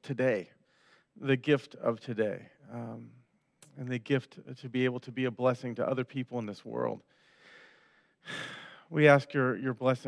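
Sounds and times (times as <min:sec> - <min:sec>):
man speaking: 0:00.0 - 0:00.5, 0:01.2 - 0:07.0, 0:08.3 - 0:10.0
man breathing into microphone: 0:07.1 - 0:08.9.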